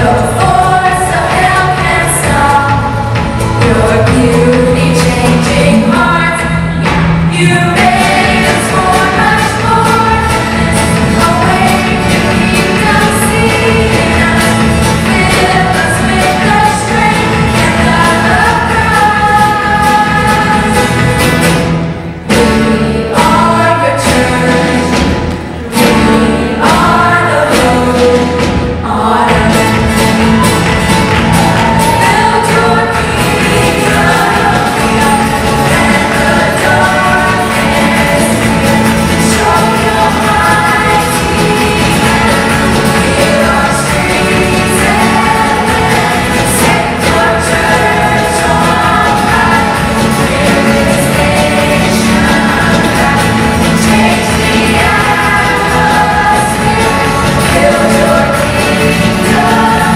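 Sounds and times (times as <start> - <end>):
acoustic guitar: 0.0 - 59.9
banjo: 0.0 - 59.9
drum strokes: 0.0 - 59.9
folk-rock band playing: 0.0 - 59.9
held bass: 0.0 - 59.9
voices singing together: 0.0 - 59.9.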